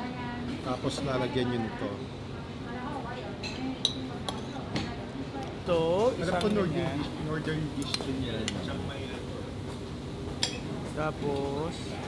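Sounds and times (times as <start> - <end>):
tableware clink: 10.4 - 10.7.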